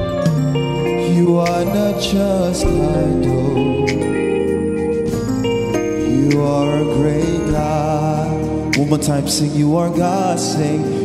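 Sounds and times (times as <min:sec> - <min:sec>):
held keyboard chords: 0:00.0 - 0:11.0
man singing into microphone: 0:00.9 - 0:04.6, 0:06.0 - 0:11.0.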